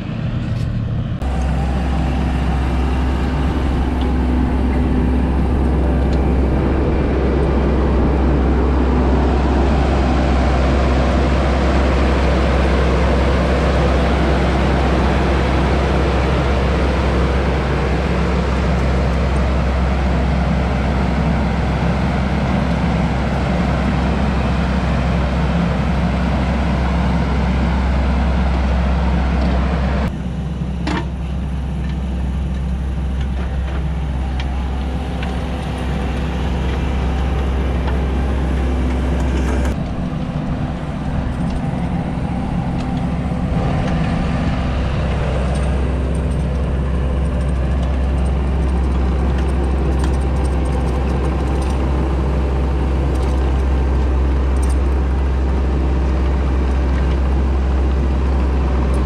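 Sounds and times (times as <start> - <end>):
diesel engine running under load: 0.0 - 59.0.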